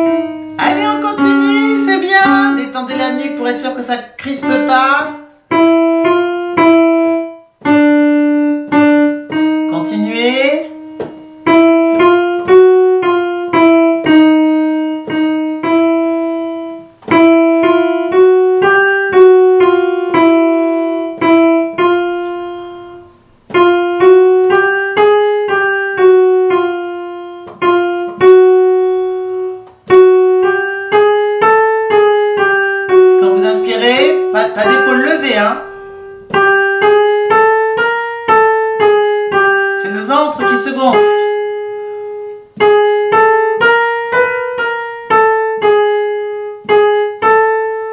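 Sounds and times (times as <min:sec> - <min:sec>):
digital piano chromatic runs: 0:00.0 - 0:47.9.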